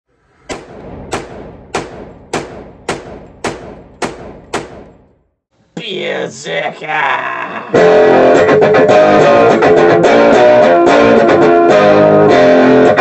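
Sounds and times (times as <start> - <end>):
sharp ringing bangs: 0.5 - 5.2
guitar music: 7.7 - 13.0.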